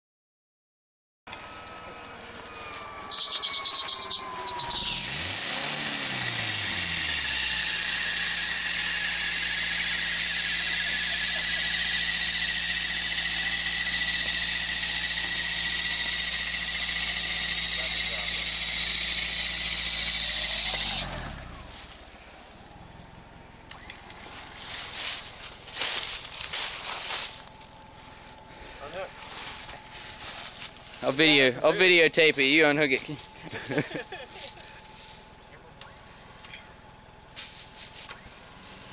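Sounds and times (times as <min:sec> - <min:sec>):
electric winch whining: 0:01.3 - 0:38.9.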